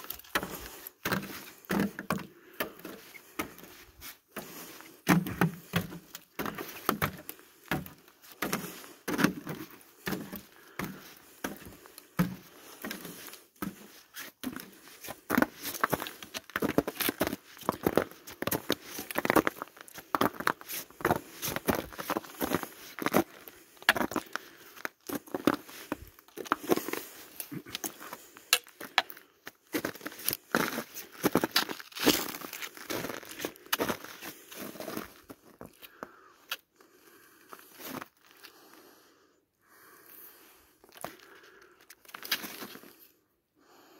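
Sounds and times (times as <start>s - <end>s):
footsteps crunching on snow: 2.8s - 29.0s, 29.7s - 35.7s.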